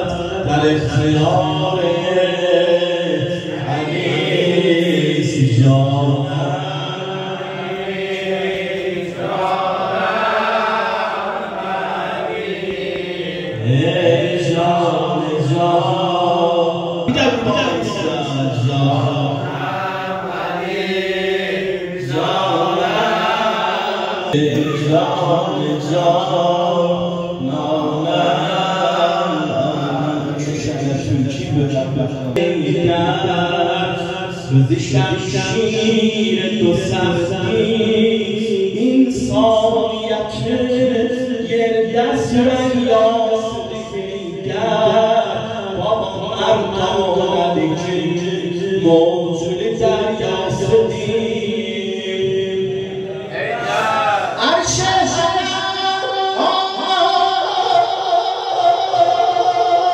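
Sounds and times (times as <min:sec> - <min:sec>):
man chanting into a microphone: 0:00.0 - 0:53.3, 0:54.2 - 0:59.9.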